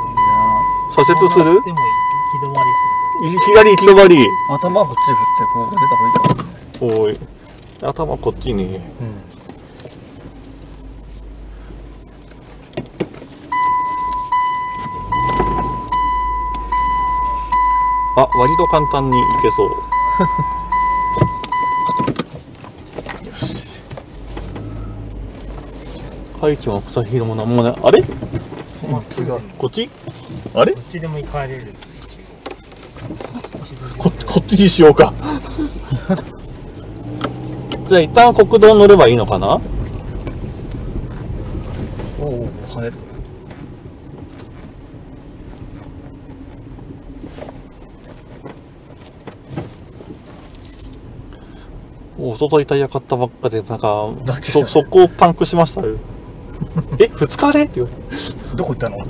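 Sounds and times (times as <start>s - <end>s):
reverse warning beeper: 0.0s - 6.4s, 13.5s - 22.2s
car engine running quietly: 0.0s - 51.9s.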